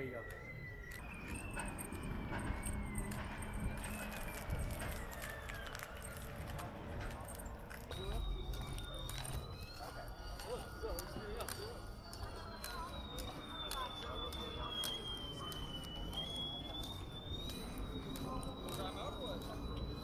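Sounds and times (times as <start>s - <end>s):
faint crowd chatter: 0.0s - 20.0s
thin high whine: 0.0s - 20.0s.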